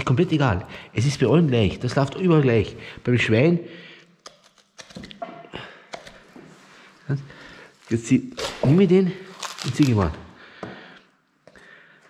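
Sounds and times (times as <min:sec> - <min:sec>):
handling meat: 0:07.8 - 0:10.2.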